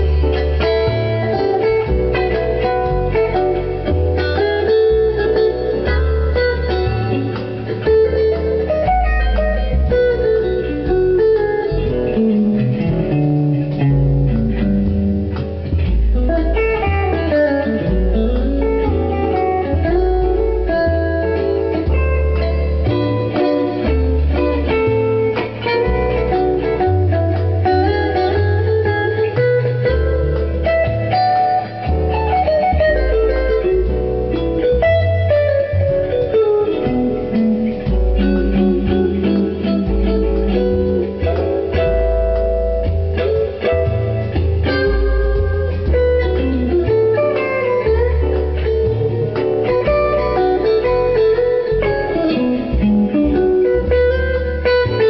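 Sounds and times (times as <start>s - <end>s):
electric guitar blues jam: 0.0s - 55.0s
low bass line: 0.0s - 55.0s.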